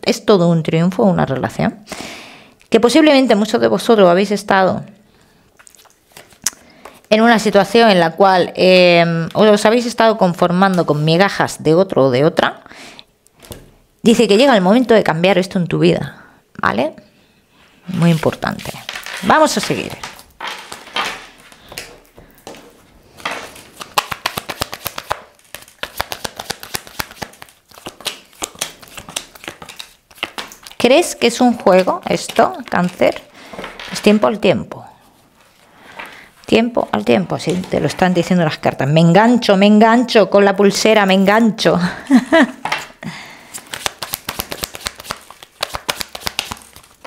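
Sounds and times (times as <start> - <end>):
cards sliding and rustling: 22.5 - 30.8, 43.5 - 47.0.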